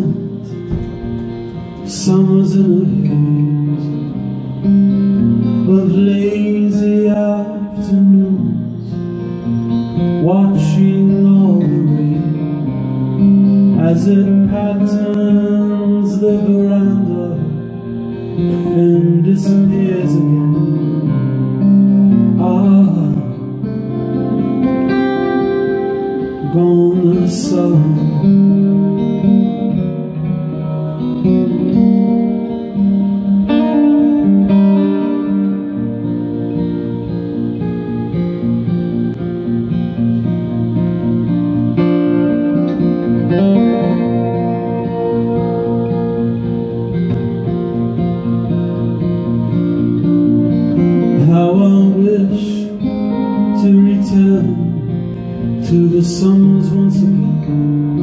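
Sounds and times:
acoustic guitar picked and strummed: 0.0s - 58.0s.

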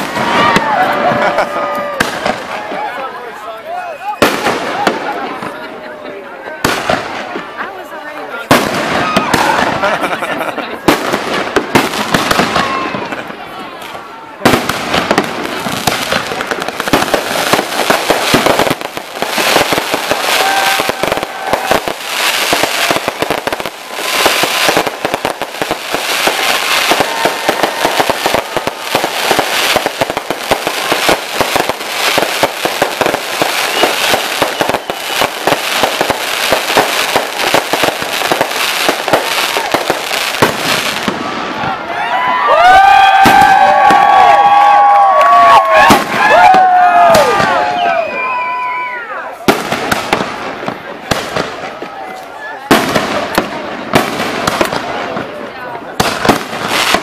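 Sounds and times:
fireworks bangs and crackling: 0.0s - 57.0s.

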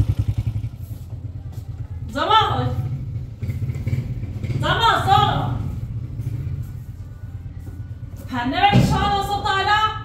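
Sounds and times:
woman speaking: 4.6s - 5.7s, 8.3s - 10.0s.

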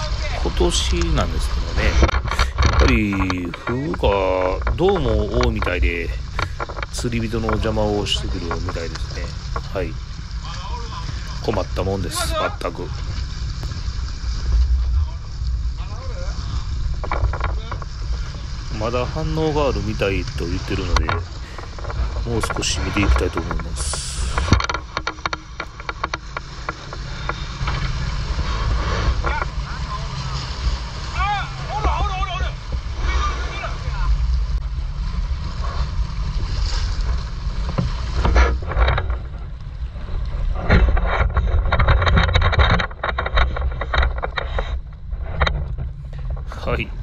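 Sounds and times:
boat engine rumble: 0.0s - 47.0s
water rushing along hull: 0.0s - 47.0s
wind buffeting microphone: 0.0s - 47.0s
clicks and knocks handling fish: 1.8s - 12.9s, 16.9s - 29.6s, 36.7s - 47.0s.

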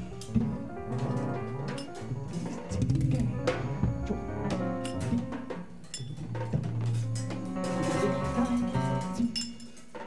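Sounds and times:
low held pitched tones: 0.2s - 9.3s
clinking metallic percussion: 4.8s - 10.0s.

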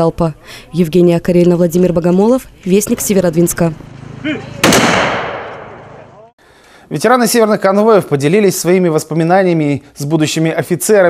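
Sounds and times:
blank rifle fire: 4.6s - 6.0s.

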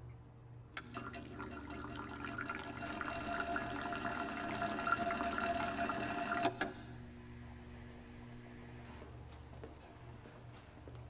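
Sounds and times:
wine bubbling in beaker: 0.8s - 6.5s
steady stirrer whine: 0.8s - 9.1s.

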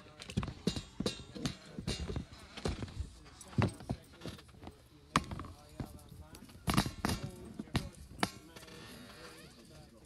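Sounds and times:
low voices: 0.0s - 10.0s.

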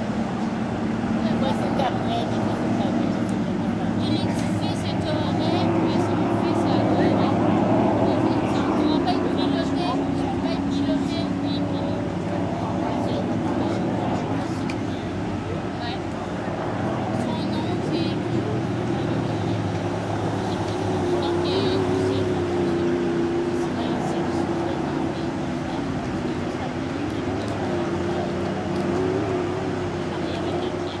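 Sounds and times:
background voices: 0.0s - 31.0s
engine drone: 0.0s - 31.0s
people chattering: 0.0s - 31.0s.

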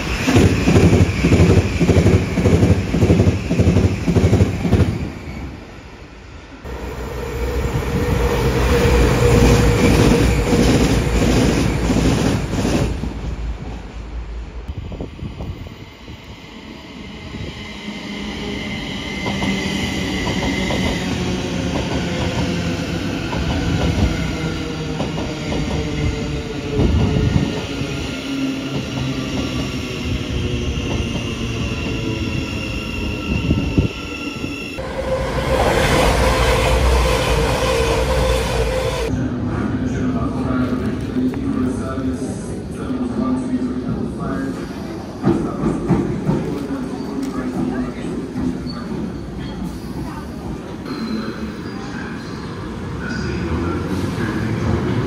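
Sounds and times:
electric train whine: 0.0s - 12.9s, 14.4s - 39.4s
train passing loudly: 0.0s - 41.0s
diesel train passing: 0.0s - 41.1s.

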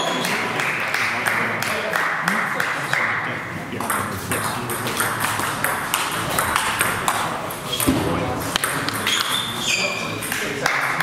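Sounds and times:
voices echoing in hall: 0.0s - 11.0s
table tennis balls clicking: 3.8s - 9.6s.

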